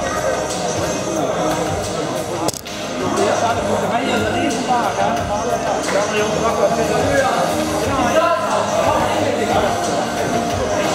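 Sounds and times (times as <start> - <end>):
people talking in hall: 0.0 - 10.9.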